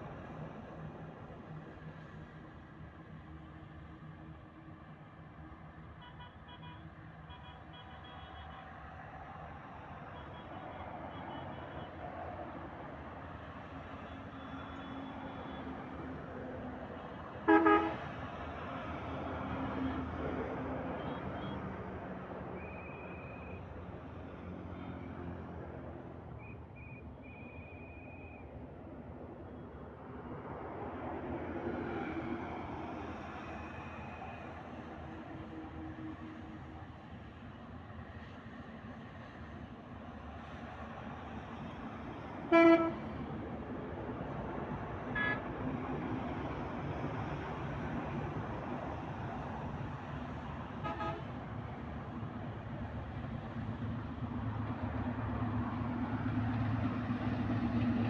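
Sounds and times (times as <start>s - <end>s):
road traffic passing: 0.0s - 58.0s
loud horn blast: 17.4s - 18.1s, 42.5s - 43.1s, 45.2s - 45.4s, 50.8s - 51.3s.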